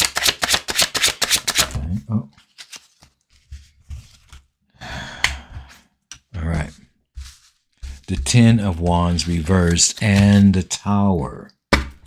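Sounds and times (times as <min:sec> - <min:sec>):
card sliding rustle: 0:02.4 - 0:04.5, 0:07.2 - 0:10.6.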